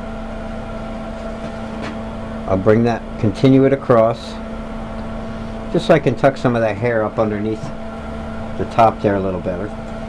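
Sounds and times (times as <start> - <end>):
motor humming: 0.0 - 10.0.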